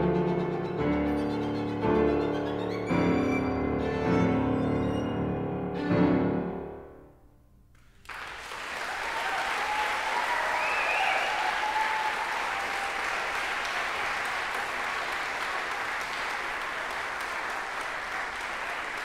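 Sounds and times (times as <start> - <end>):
violin and piano note: 0.0 - 6.8
audience applauding: 7.8 - 19.0.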